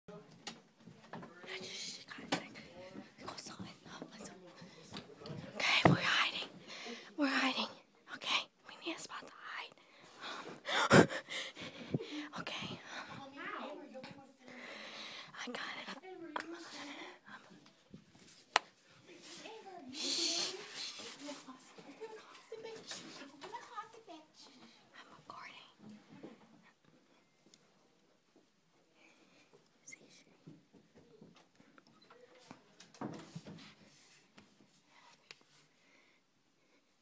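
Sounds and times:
person whispering: 1.3s - 4.6s, 5.4s - 9.8s, 12.0s - 14.2s, 15.3s - 17.5s, 19.8s - 21.5s, 24.5s - 26.0s, 29.8s - 30.4s.

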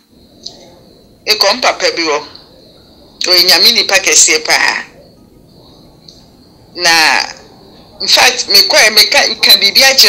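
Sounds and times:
faint high-pitched hum: 0.0s - 10.0s
man speaking: 1.3s - 5.0s, 6.8s - 10.0s.

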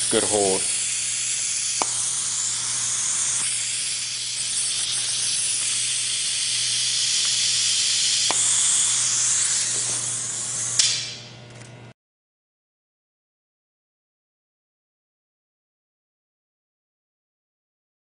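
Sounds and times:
compressed air hissing: 0.0s - 11.2s.

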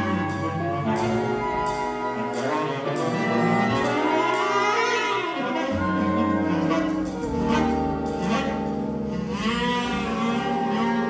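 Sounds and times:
jazz big band sustained chord: 0.0s - 11.0s
note bending in pitch: 0.0s - 11.0s.

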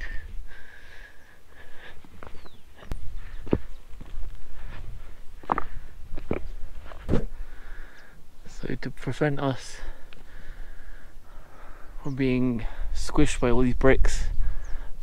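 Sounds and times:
footsteps on stone path: 1.2s - 7.6s, 9.9s - 10.4s.

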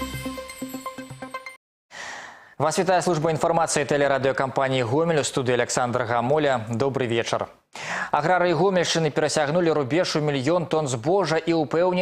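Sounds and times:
man speaking: 2.6s - 12.0s.

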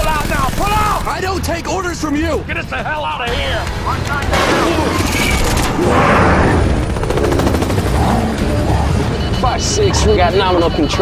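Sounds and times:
rapid machine-gun fire: 0.0s - 1.4s, 4.2s - 9.2s
helicopters rumbling: 0.0s - 11.0s.

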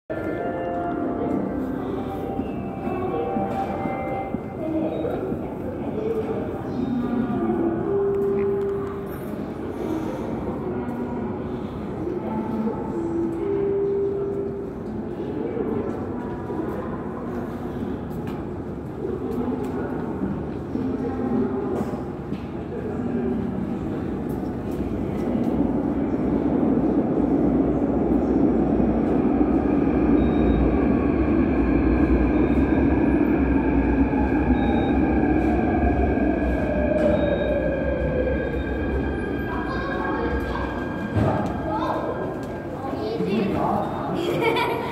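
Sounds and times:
subway train wheels rumbling: 0.1s - 44.9s.

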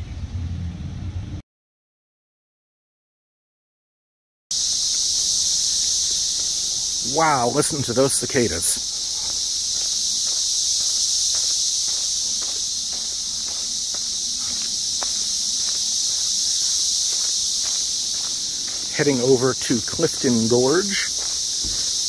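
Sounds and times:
cicadas droning: 4.5s - 22.0s
footsteps on dirt trail: 4.5s - 22.0s.

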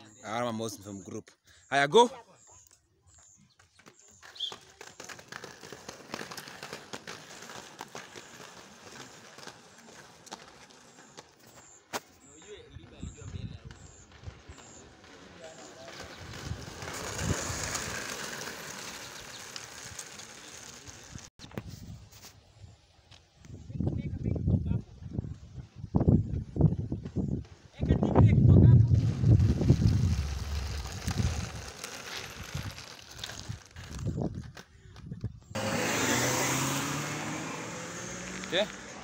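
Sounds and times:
skate wheels rolling on asphalt: 3.1s - 39.0s
wind buffeting microphone: 23.5s - 35.5s.

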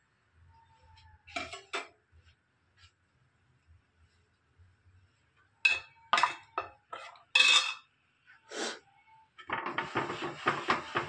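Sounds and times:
ladle scraping a steel pot: 9.4s - 11.0s.

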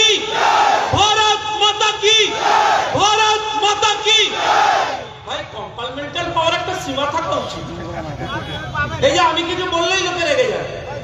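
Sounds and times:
crowd shouting back: 0.0s - 1.0s, 2.3s - 3.0s, 4.3s - 5.0s
man shouting into microphone: 0.0s - 7.7s.

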